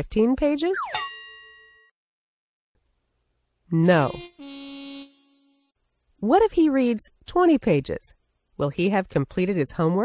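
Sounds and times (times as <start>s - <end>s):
bell-like chime: 0.8s - 1.9s.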